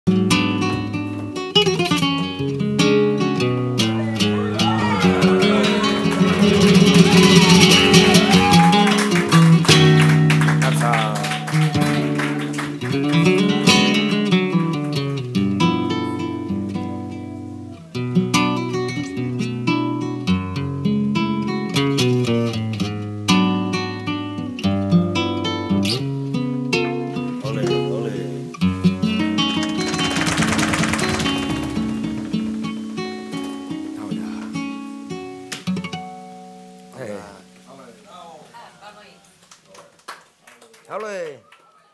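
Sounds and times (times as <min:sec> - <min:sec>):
flamenco guitar playing: 0:00.1 - 0:37.7
person singing: 0:03.8 - 0:09.0
cajon strikes: 0:05.8 - 0:10.8, 0:28.9 - 0:34.0.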